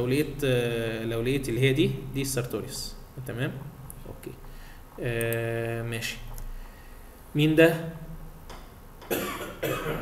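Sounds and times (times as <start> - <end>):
person coughing: 9.1 - 10.0.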